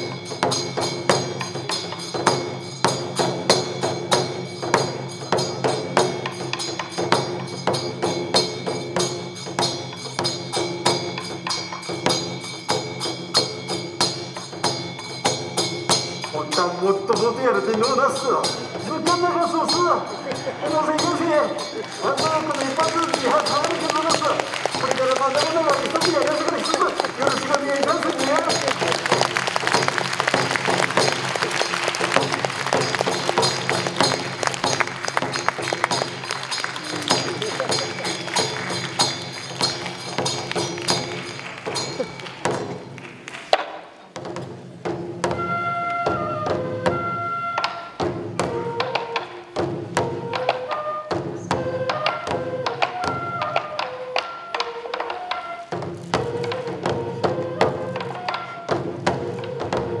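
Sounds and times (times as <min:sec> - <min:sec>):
taiko drums struck with sticks: 0:00.0 - 0:19.3, 0:21.9 - 0:45.5
bamboo flutes playing: 0:21.7 - 0:42.2, 0:45.3 - 1:00.0.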